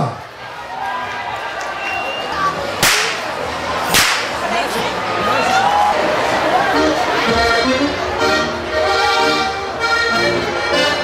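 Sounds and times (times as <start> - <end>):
crowd chatter: 0.0 - 11.0
whip cracking: 2.8 - 3.3, 3.9 - 4.4.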